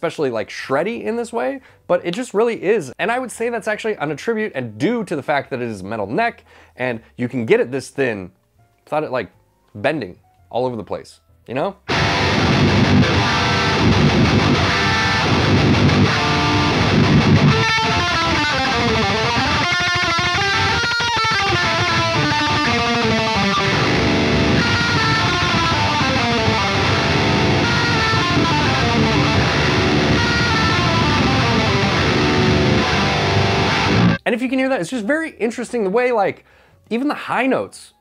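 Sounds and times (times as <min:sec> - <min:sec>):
distorted electric guitar: 0:11.9 - 0:34.2.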